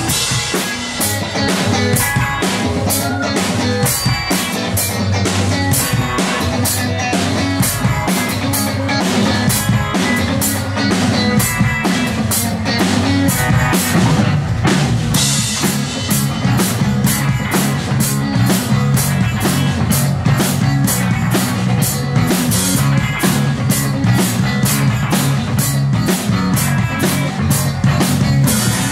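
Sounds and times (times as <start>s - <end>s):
bass: 0.0s - 28.9s
drum kit beat: 0.0s - 28.9s
electric guitars: 0.0s - 28.9s.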